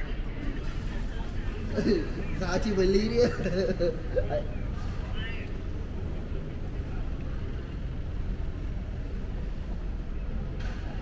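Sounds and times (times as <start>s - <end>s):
low rumble of indoor hall: 0.0s - 11.0s.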